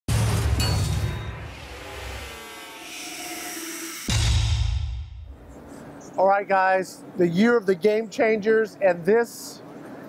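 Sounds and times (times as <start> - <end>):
heavy music hits: 0.1 - 5.5.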